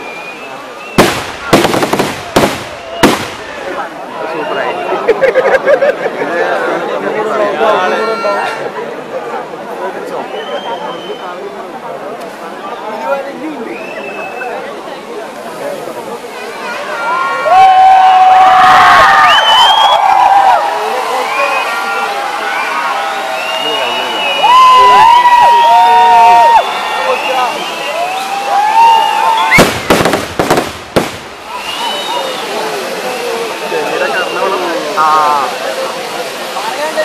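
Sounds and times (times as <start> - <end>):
fireworks fizzing crackle: 0.0 - 4.2, 19.1 - 37.0
crowd shouting and cheering: 0.0 - 11.5, 16.0 - 30.5, 31.3 - 37.0
sharp firework bangs: 1.0 - 3.7, 29.5 - 31.8.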